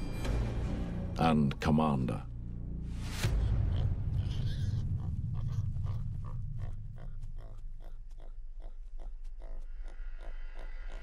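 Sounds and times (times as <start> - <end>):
low rumble: 2.3 - 9.0
warthogs grunting: 3.5 - 11.0.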